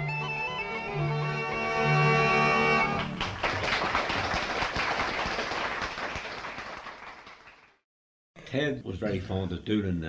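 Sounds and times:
audience applause: 2.9 - 7.8.

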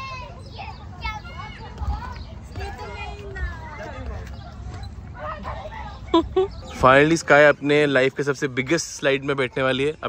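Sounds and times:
children's voices at play: 0.0 - 10.0.

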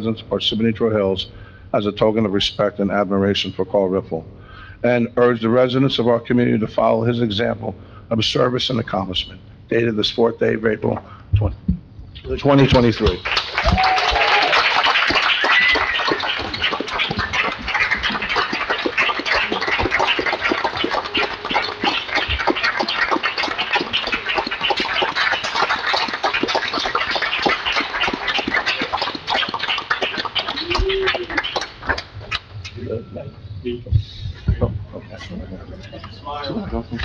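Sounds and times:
people applauding: 12.4 - 32.8
cheers and voices: 13.6 - 14.7, 30.5 - 31.5.

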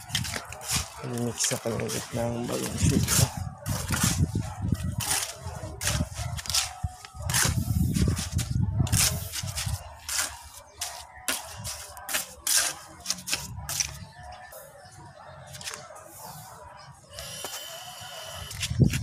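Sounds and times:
trowel scraping wet mortar: 0.0 - 14.0.

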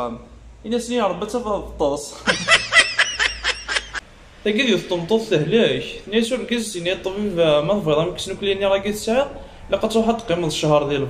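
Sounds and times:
person laughing: 2.2 - 4.0.

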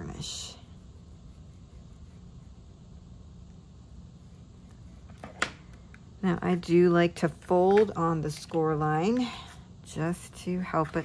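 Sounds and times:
faint low room hum: 0.0 - 11.0.

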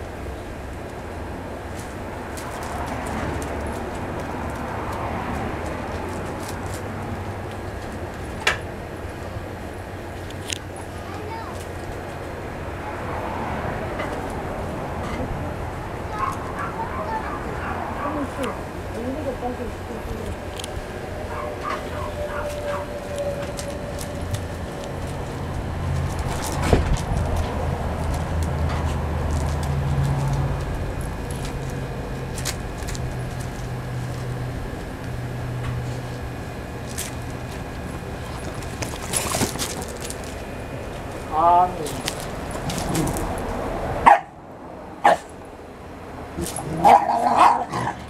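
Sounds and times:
puppies whimpering: 16.2 - 18.4, 21.0 - 24.4
paws scuffling on gravel: 20.2 - 35.0, 35.8 - 43.5.

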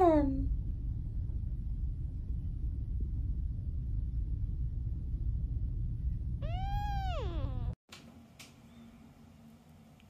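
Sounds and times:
steady low rumble: 0.0 - 7.8
kitten meowing: 6.4 - 7.8.

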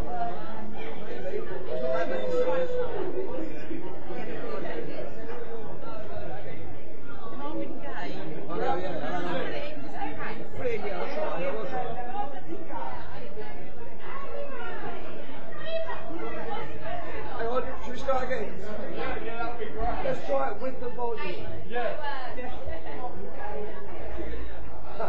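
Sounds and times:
people chattering: 0.0 - 25.0.

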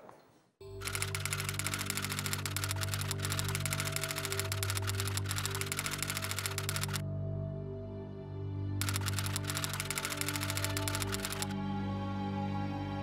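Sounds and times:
low music: 0.6 - 13.0
typewriter keys clicking: 0.8 - 7.0, 8.8 - 11.5.

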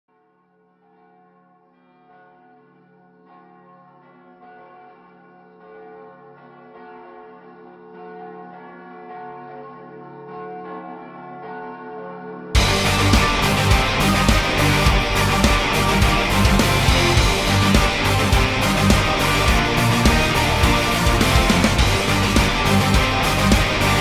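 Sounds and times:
church bells ringing: 1.8 - 24.0.

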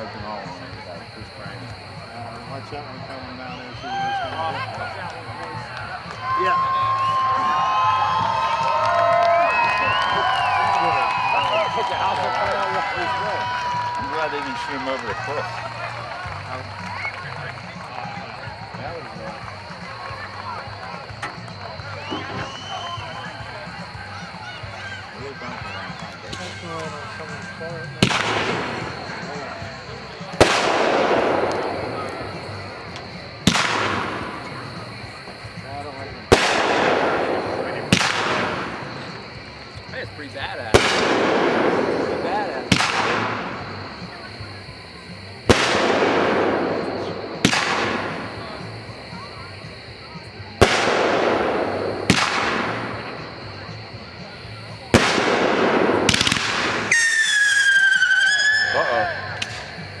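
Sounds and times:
wavering falling whistle: 6.3 - 12.2, 21.9 - 23.4, 56.9 - 59.4
firework shells bursting: 28.0 - 29.3, 30.3 - 35.6, 36.3 - 39.9, 40.7 - 44.1, 45.5 - 48.8, 50.6 - 53.2, 54.8 - 58.8.

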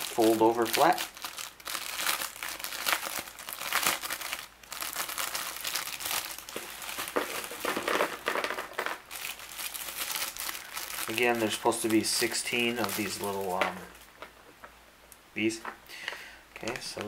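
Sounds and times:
plastic bag crinkling: 0.0 - 14.6
small plastic parts dropping: 6.5 - 9.7.

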